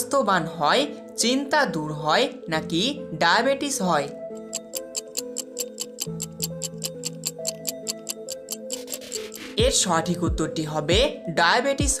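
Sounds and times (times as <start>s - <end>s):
background music: 0.0s - 12.0s
clock-like ticking: 4.3s - 9.8s
person speaking: 8.8s - 12.0s.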